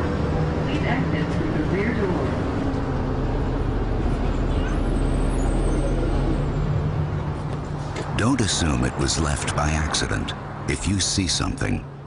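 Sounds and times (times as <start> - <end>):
bus engine hum: 0.0 - 12.0
road rumble: 0.0 - 12.0.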